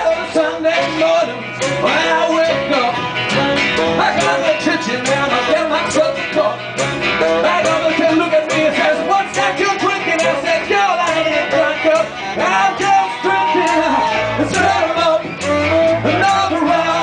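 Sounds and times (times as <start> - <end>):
live band playing: 0.0 - 17.0.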